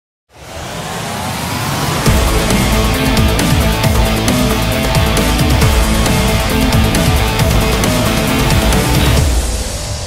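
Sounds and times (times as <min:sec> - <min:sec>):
rising whooshing swell: 0:00.3 - 0:10.0.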